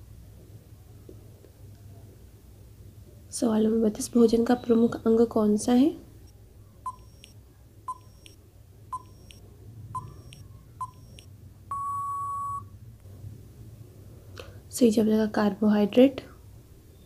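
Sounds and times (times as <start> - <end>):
short electronic beeps: 6.9 - 9.4, 10.0 - 12.7
long beep: 10.0 - 12.7.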